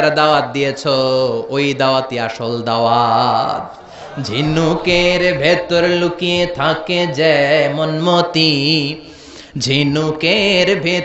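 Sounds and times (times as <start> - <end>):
man chanting a sermon: 0.0 - 9.0.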